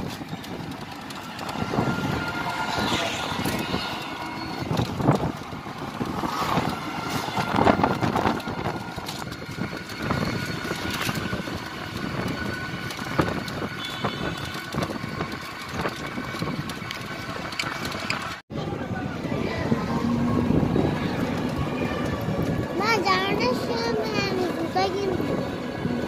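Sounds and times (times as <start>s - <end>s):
vehicle frame rattling and knocking: 0.0s - 18.4s
rickshaw ride noise: 0.0s - 26.0s.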